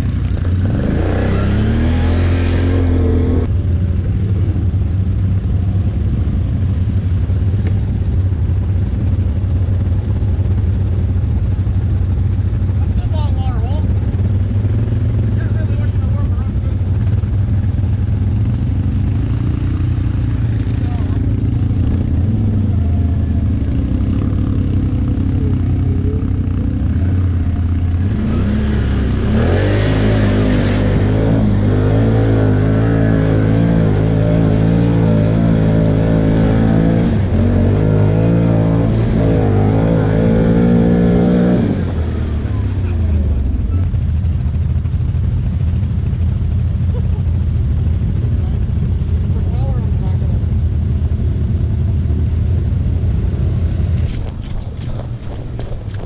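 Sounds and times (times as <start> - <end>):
atv engine revving: 0.0 - 56.0.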